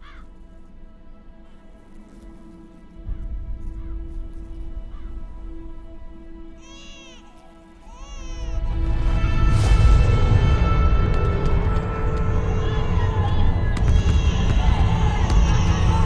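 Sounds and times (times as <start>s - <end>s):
dark film-score drone: 7.4s - 16.0s
sudden rush: 8.4s - 16.0s
low rumble: 8.5s - 16.0s.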